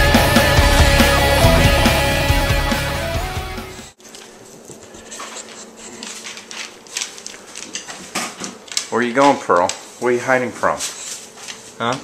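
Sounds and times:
rock music: 0:00.0 - 0:03.9
dog paws clicking on vinyl floor: 0:04.1 - 0:12.0.

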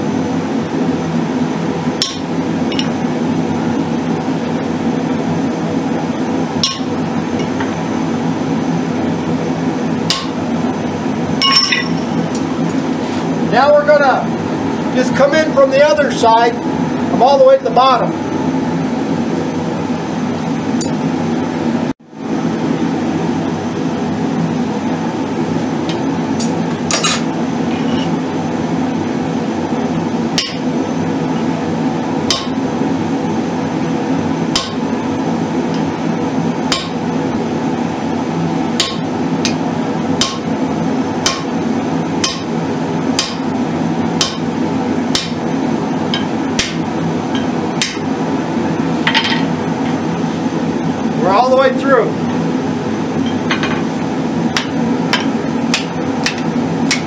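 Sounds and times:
steady hum: 0:00.0 - 0:57.0
hammer striking steel on anvil: 0:02.0 - 0:03.0, 0:06.6 - 0:07.6, 0:10.1 - 0:10.4, 0:11.4 - 0:12.5, 0:30.4 - 0:30.6, 0:32.3 - 0:32.6, 0:34.5 - 0:34.8, 0:36.7 - 0:37.0, 0:38.8 - 0:39.6, 0:40.2 - 0:40.4, 0:41.2 - 0:41.5, 0:42.2 - 0:42.5, 0:43.2 - 0:43.4, 0:44.2 - 0:44.4, 0:45.1 - 0:45.4, 0:46.1 - 0:46.8, 0:47.4 - 0:48.0, 0:54.6 - 0:57.0.

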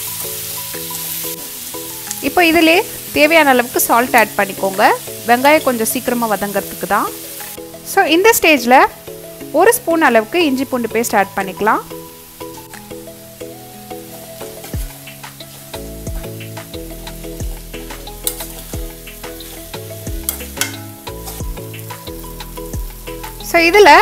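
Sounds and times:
background music with held notes: 0:00.0 - 0:24.0
onions and tomatoes sizzling: 0:00.0 - 0:24.0
metal spoon clinking against pan: 0:18.2 - 0:18.7, 0:20.2 - 0:21.4.

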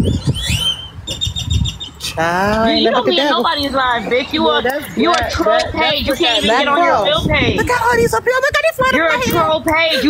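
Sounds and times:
birds calling: 0:00.0 - 0:07.3
wind rumble on microphone: 0:00.0 - 0:10.0.

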